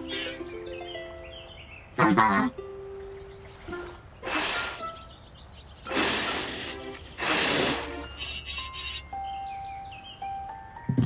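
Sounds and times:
cartoon musical notes: 0:00.0 - 0:04.0, 0:05.9 - 0:11.0
hissing burst: 0:04.2 - 0:04.8, 0:05.9 - 0:09.1.

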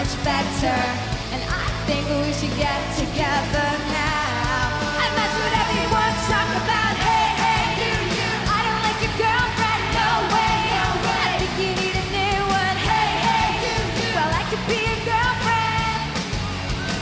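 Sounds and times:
woman singing: 0:00.0 - 0:16.2
electric guitars: 0:00.0 - 0:17.0
steady drum beat: 0:00.0 - 0:17.0.

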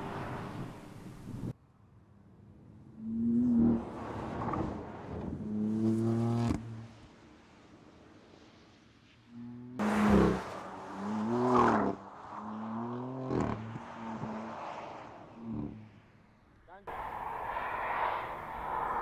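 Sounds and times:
car engine revving: 0:09.4 - 0:14.6.

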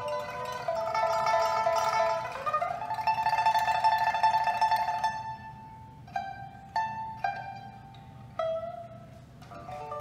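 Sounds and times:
plucked lute melody: 0:00.0 - 0:10.0.

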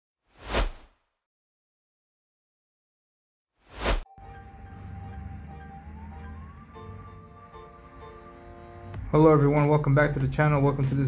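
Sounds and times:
whoosh sound effect: 0:03.7 - 0:04.0.

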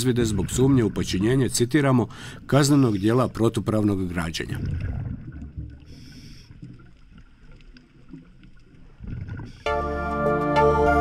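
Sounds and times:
muffled underwater rumble: 0:04.4 - 0:09.7.

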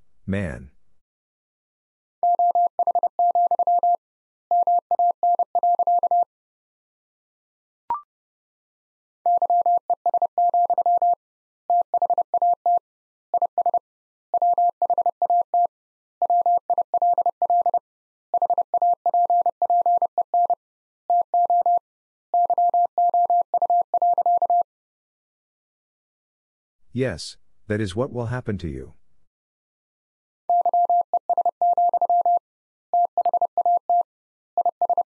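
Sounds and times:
morse code tone: 0:30.5 - 0:32.4.

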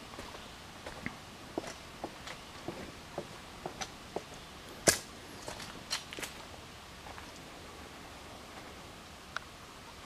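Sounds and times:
footsteps on dirt and leaves: 0:00.0 - 0:07.4.

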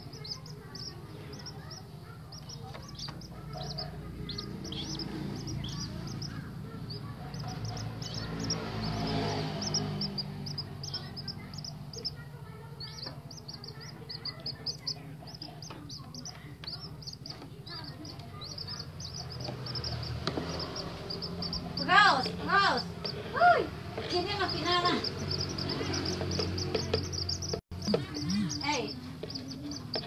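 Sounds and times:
chicks peeping: 0:00.0 - 0:30.0.

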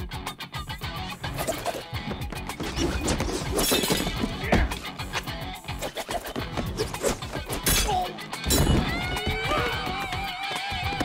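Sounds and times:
driving film score music: 0:00.0 - 0:11.0.

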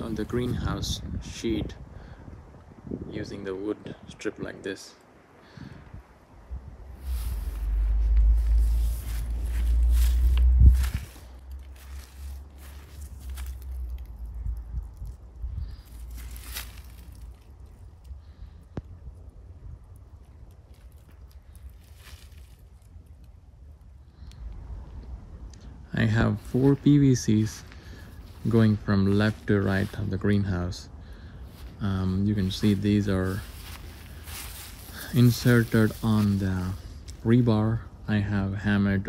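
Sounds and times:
wind rumbling on microphone: 0:00.0 - 0:39.0
rustles: 0:04.8 - 0:38.4
footsteps on dry ground: 0:06.9 - 0:17.9, 0:20.6 - 0:23.0, 0:26.1 - 0:30.8, 0:31.4 - 0:37.5.

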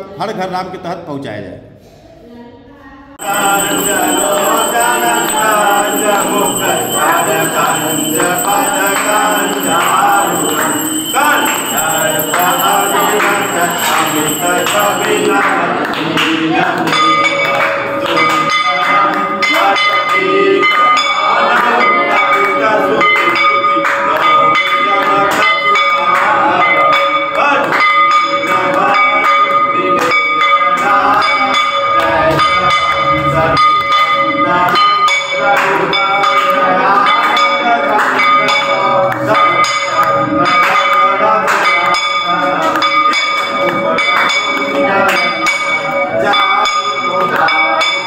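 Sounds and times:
people's voices: 0:02.0 - 0:27.8
temple bells ringing: 0:03.2 - 0:16.2.

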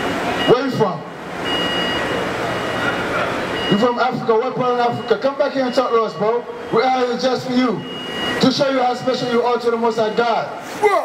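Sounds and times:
traffic hiss and rumble: 0:00.0 - 0:11.0.

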